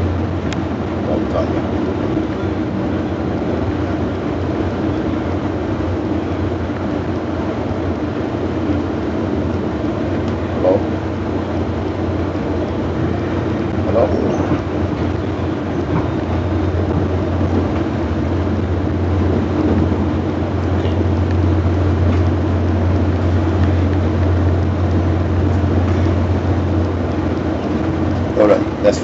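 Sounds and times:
train rumble and hum: 0.0 - 29.0.

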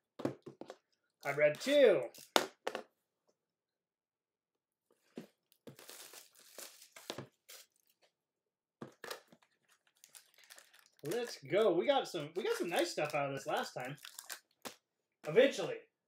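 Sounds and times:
wrapping crinkling and tearing: 5.5 - 8.0, 9.0 - 11.5, 12.4 - 14.8.

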